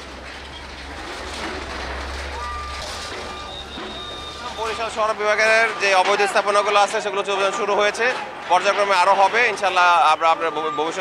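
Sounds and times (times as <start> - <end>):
diesel engine rumbling: 0.0 - 11.0
reversing alarm beeping: 2.3 - 7.6, 8.5 - 11.0.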